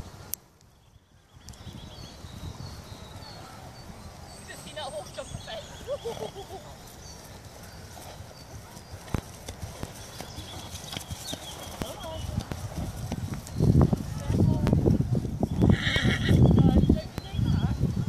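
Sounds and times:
horse hooves on grass: 0:01.2 - 0:18.0.

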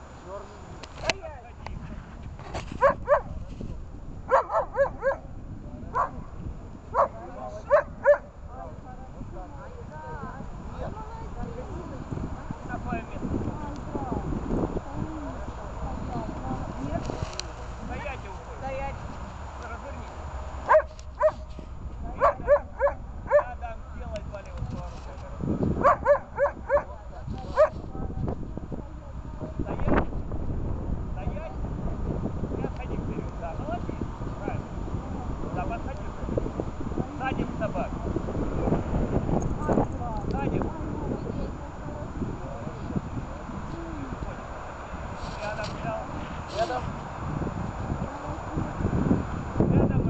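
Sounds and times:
dog barking: 0:02.8 - 0:03.4, 0:04.3 - 0:05.3, 0:05.9 - 0:06.2, 0:06.9 - 0:08.3, 0:20.7 - 0:21.5, 0:22.2 - 0:23.6, 0:25.8 - 0:27.0, 0:27.6 - 0:27.8.

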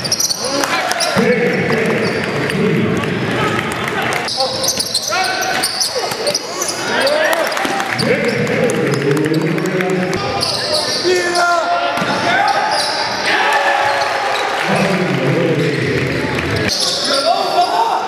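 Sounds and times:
voices in a hall: 0:00.0 - 0:18.0.

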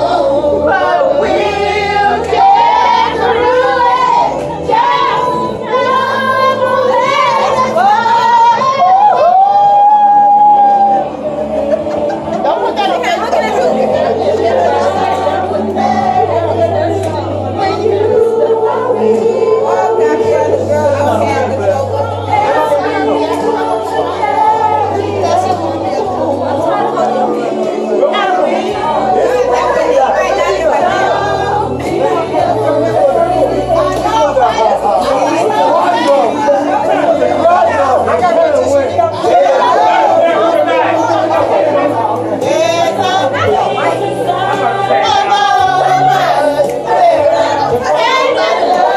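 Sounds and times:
loud overlapping chatter: 0:00.0 - 0:48.9
voices singing together: 0:00.0 - 0:48.9.

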